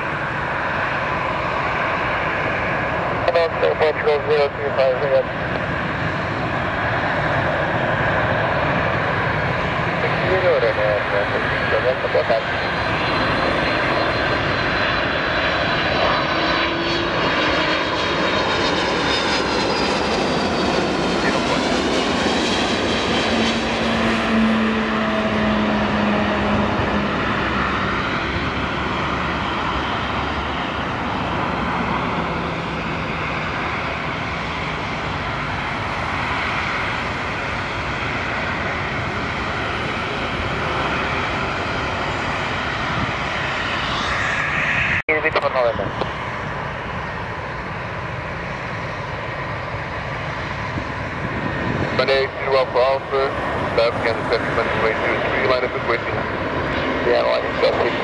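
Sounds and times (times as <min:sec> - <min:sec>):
jet engines whining: 0:00.0 - 0:58.0.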